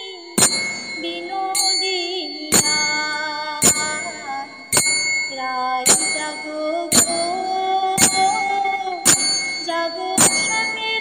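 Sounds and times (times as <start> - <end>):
person singing devotional song: 0.0 - 11.0
ringing metallic bell strikes: 0.0 - 11.0.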